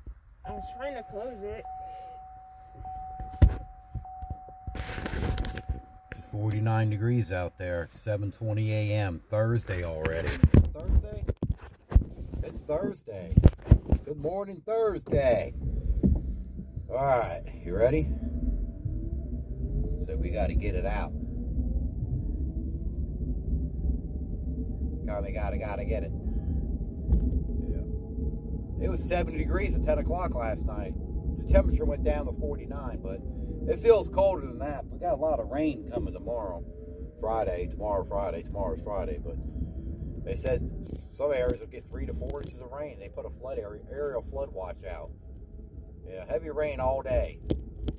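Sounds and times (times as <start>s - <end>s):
faint steady tone: 0.0s - 11.3s, 13.9s - 47.9s
car cabin rumble: 0.0s - 47.9s
engine note rising: 0.5s - 10.4s, 15.1s - 47.8s
rustling: 1.9s - 6.8s.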